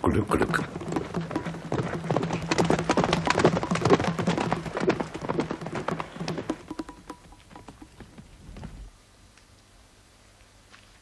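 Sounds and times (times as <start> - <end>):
horse hooves galloping: 0.0 - 9.0.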